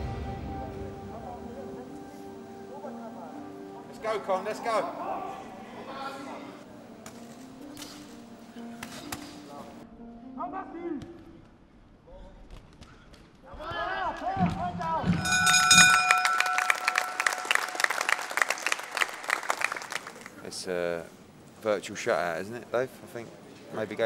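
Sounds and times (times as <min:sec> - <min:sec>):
loud rapid ringing strikes: 0:15.1 - 0:18.2.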